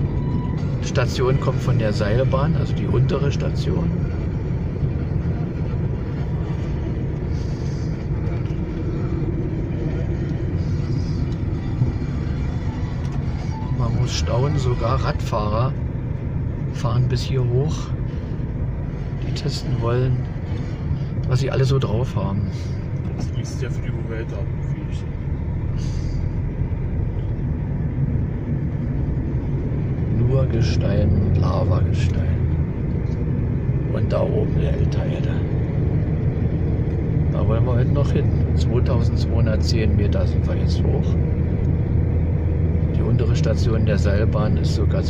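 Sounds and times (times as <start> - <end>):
car engine and tyre rumble: 0.0 - 45.0.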